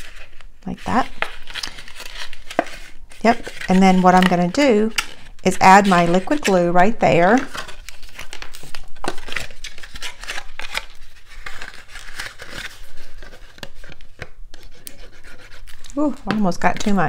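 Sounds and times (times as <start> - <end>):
card paper rustling: 0.0 - 17.0.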